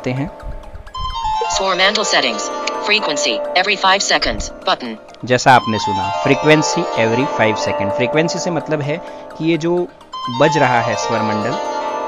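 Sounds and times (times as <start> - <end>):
person speaking: 1.4 - 11.6
plucked strings strummed and ringing: 4.5 - 12.0.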